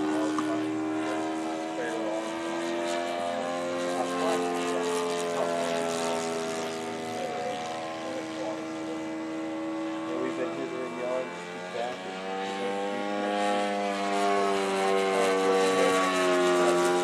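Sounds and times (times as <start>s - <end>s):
model airplane engine buzzing: 0.0s - 17.0s.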